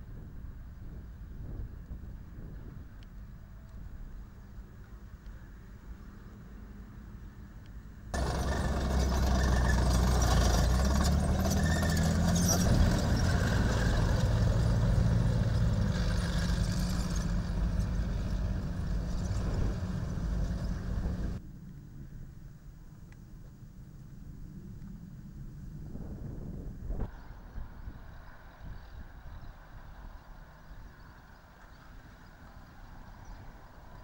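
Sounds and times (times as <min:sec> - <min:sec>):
distant armoured vehicles rumbling: 0:08.1 - 0:21.4
vehicle engines driving past: 0:08.1 - 0:21.4.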